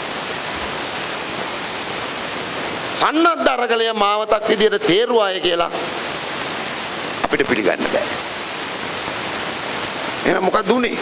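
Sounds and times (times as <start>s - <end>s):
steady hiss of noise: 0.0s - 11.0s.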